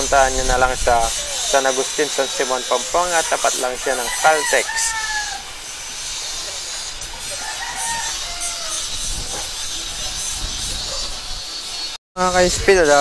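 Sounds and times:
outdoor background hiss: 0.0s - 8.2s.

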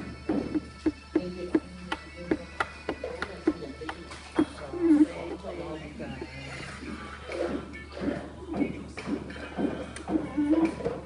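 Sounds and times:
voice making wordless sounds: 1.2s - 11.0s.

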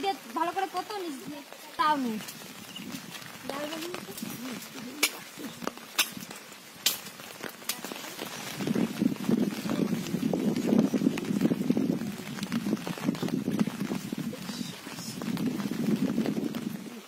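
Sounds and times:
muddy water splashing: 0.0s - 17.0s.

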